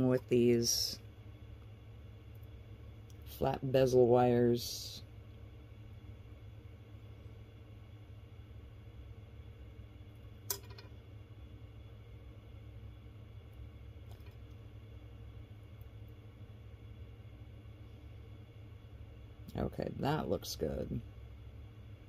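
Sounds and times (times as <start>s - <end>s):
low hum: 0.0s - 22.0s
sharp click of wire: 10.5s - 10.9s.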